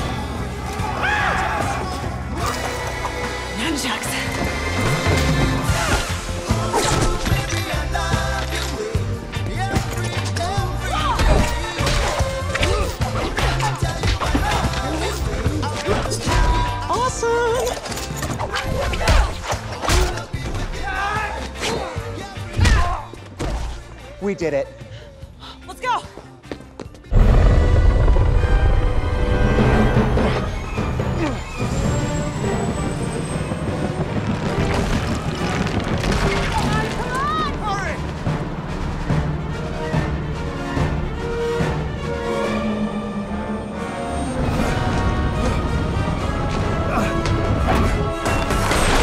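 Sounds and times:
action film score: 0.0 - 49.0.

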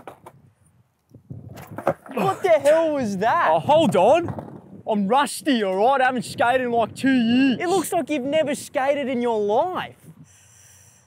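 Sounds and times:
skateboard wooden knocks: 0.0 - 0.5, 1.4 - 2.2, 3.7 - 4.6
skateboard wheels rolling on concrete: 0.0 - 10.2.

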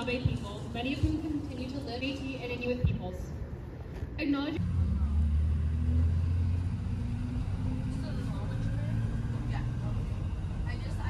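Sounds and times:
road rumble: 0.0 - 11.0
bus engine drone: 4.6 - 11.0.

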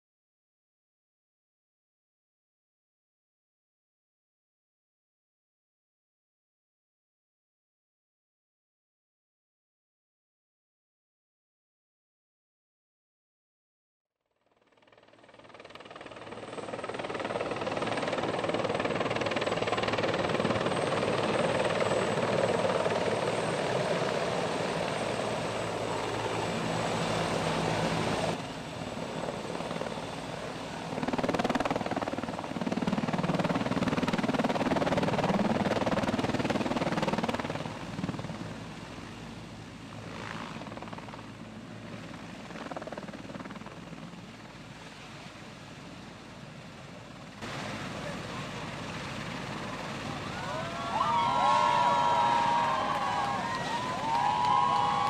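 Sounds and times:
helicopter rotor and engine: 14.5 - 55.0
helicopter landing: 14.6 - 55.0.

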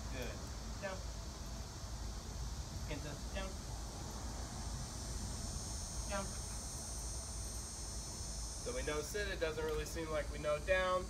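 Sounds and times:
constant low rumble: 0.0 - 11.0
high-pitched insect chorus: 0.0 - 11.0.

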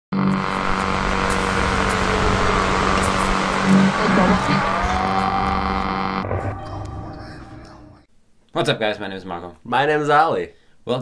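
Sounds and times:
loud dense droning noise: 0.1 - 7.6
tone falling in pitch: 0.2 - 7.7.

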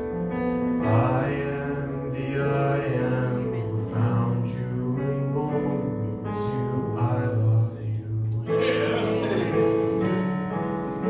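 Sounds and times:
piano accompaniment: 0.0 - 11.0
man singing into a microphone: 0.8 - 9.8.

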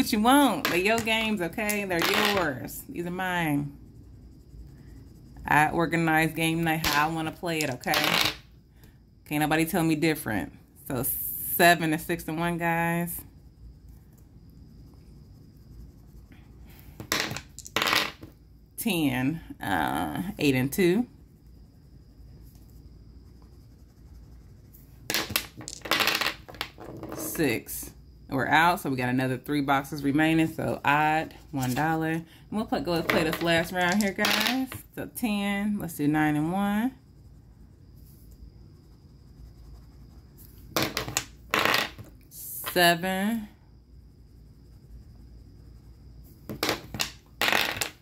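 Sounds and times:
dice clattering on tabletop: 2.0 - 2.4, 7.6 - 8.4, 17.0 - 18.3, 25.1 - 27.3, 33.0 - 34.6, 40.8 - 42.1, 46.5 - 48.0.

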